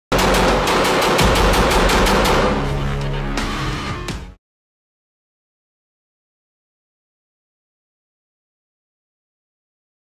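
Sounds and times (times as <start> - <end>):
pistol firing automatic: 0.1 - 2.7.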